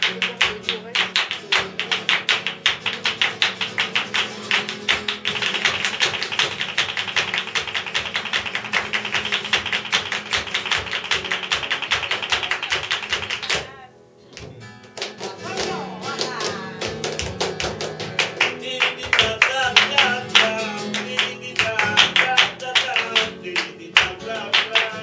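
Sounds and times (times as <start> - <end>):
flamenco guitar: 0.0 - 25.0
people clapping in rhythm: 0.0 - 25.0.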